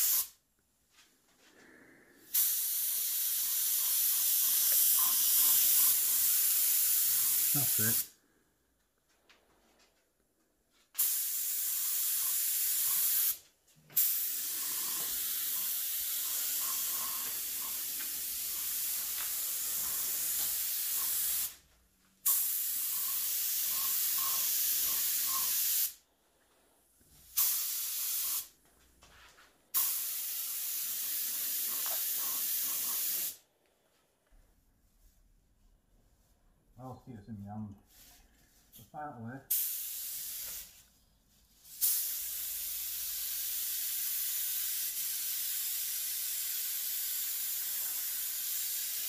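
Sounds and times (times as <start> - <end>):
paint spray gun hissing: 0.0 - 0.4, 2.3 - 8.1, 11.0 - 13.4, 14.0 - 21.6, 22.2 - 26.0, 27.3 - 28.5, 29.8 - 33.4, 39.5 - 40.8, 41.6 - 49.0.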